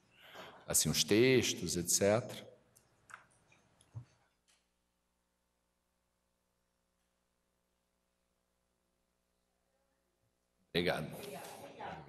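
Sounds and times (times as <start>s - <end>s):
man speaking: 0.7s - 2.5s, 10.8s - 11.2s.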